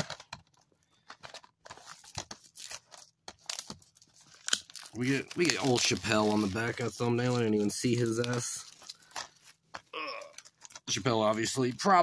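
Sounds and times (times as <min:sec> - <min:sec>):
plastic shrink wrap tearing: 0:01.7 - 0:12.0.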